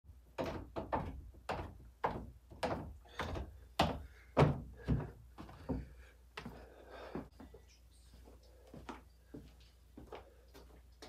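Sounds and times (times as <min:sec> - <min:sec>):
footsteps on wooden stairs: 0:00.1 - 0:07.6.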